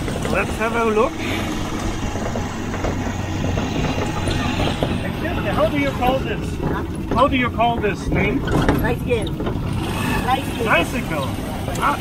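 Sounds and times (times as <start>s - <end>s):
motorcycle engine droning: 0.0s - 8.8s.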